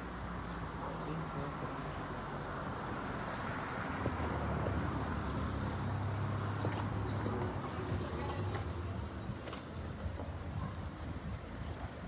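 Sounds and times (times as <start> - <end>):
street noise: 0.0 - 12.0.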